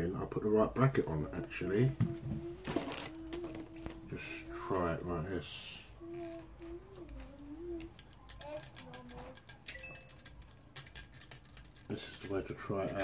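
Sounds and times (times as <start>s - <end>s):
light metallic clicks and rattles: 6.8s - 13.0s.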